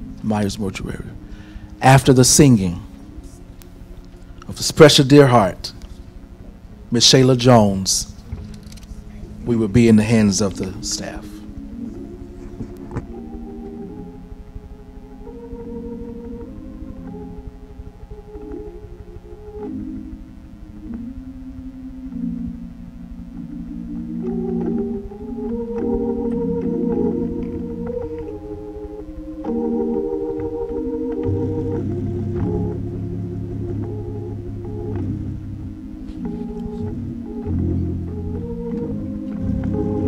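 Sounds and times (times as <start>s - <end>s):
organ playing sustained chords: 0.0s - 40.0s.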